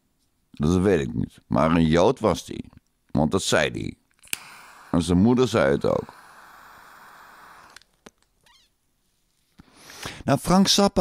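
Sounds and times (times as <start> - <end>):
faint background hiss: 0.0 - 11.0
faint squeak: 8.4 - 8.8.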